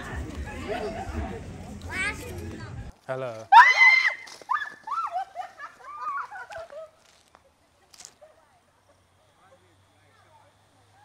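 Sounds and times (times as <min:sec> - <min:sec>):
women shrieking in fright: 0:03.5 - 0:06.2.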